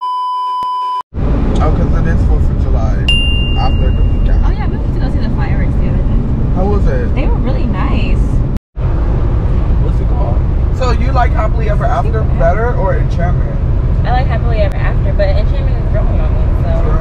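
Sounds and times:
car road and engine rumble: 0:01.2 - 0:17.0.

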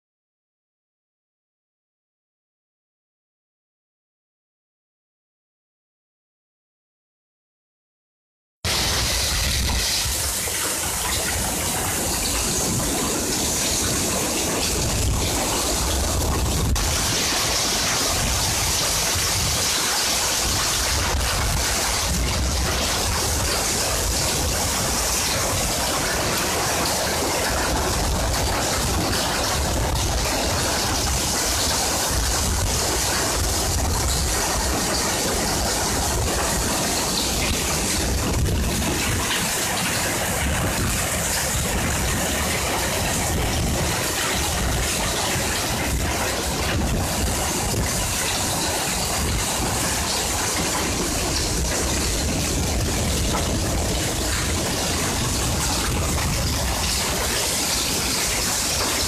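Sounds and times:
heavy rain splashing into water: 0:08.7 - 0:59.0.

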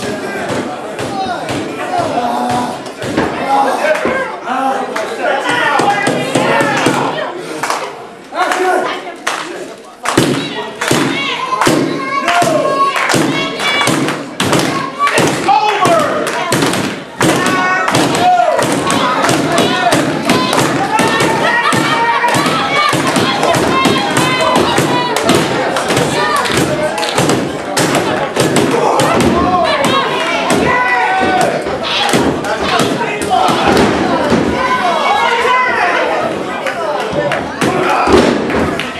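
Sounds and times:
spectators shouting: 0:10.2 - 0:38.9.

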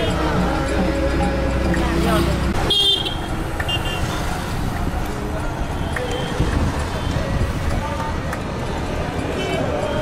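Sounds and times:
vehicle engine and road rumble: 0:00.0 - 0:10.0
vehicle horn honking: 0:02.6 - 0:04.2.

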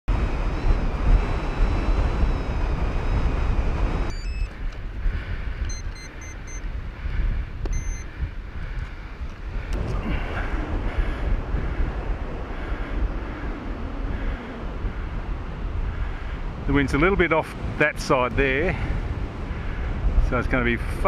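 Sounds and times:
wind buffeting microphone: 0:00.1 - 0:21.0
short electronic beeps: 0:01.5 - 0:04.6, 0:05.7 - 0:06.7, 0:07.7 - 0:08.1.

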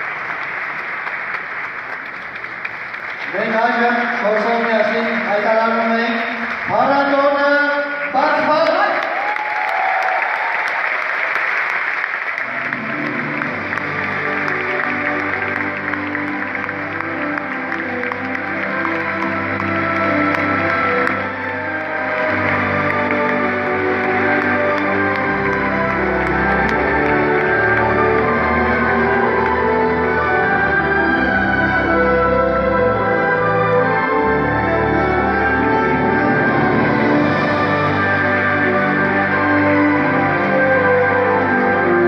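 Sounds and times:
audience applauding: 0:00.0 - 0:42.0
music: 0:00.0 - 0:42.0.

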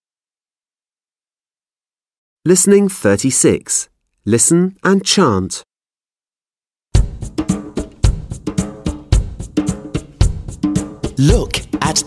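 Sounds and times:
drum kit beat: 0:07.0 - 0:12.0.

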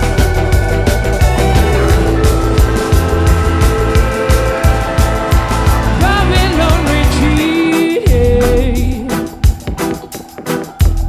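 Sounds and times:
drum beat: 0:00.0 - 0:11.0
live band music: 0:00.0 - 0:11.0.

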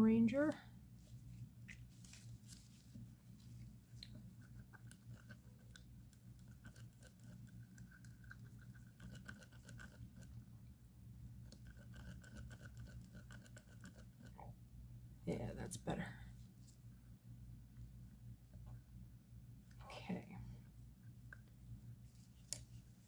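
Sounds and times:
low steady hum: 0:00.0 - 0:23.0
stir stick scraping a cup: 0:11.5 - 0:14.4.

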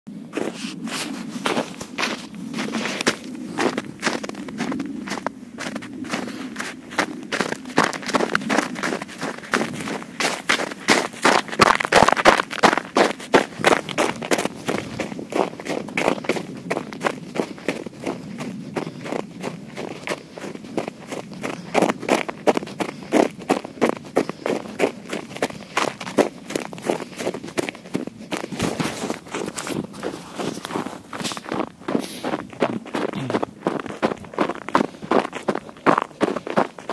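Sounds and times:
running footsteps on snow: 0:00.2 - 0:36.9.

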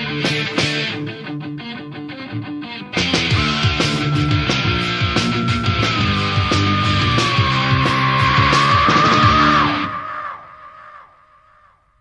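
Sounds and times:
heavy metal chord ringing out: 0:03.2 - 0:08.8
sustained high guitar note: 0:03.2 - 0:10.0
sliding notes dropping in pitch: 0:03.2 - 0:10.6.

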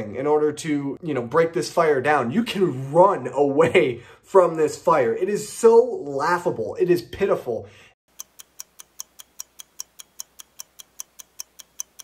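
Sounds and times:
rapid clock-like ticking: 0:08.1 - 0:12.0.

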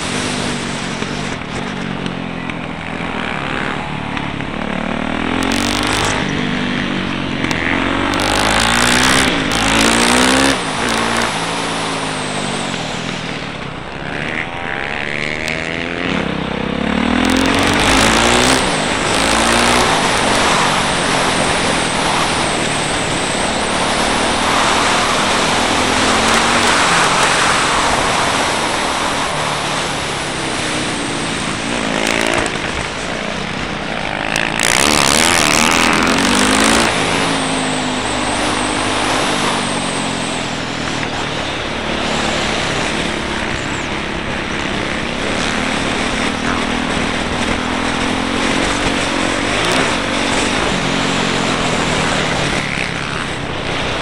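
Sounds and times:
motorcycle engine revving: 0:00.0 - 0:54.0
wind rushing over microphone: 0:00.0 - 0:54.0.

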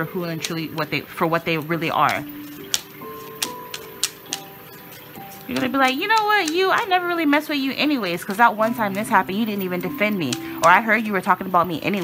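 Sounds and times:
soft background music: 0:00.0 - 0:12.0
cards being shuffled: 0:01.4 - 0:07.0, 0:08.0 - 0:09.3.

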